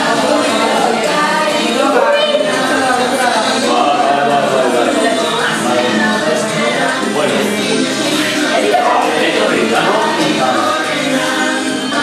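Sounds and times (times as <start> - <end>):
choir singing: 0.0 - 12.0.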